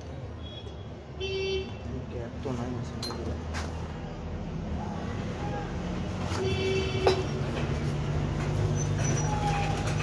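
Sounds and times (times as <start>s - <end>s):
metal squeal: 8.6s - 10.0s.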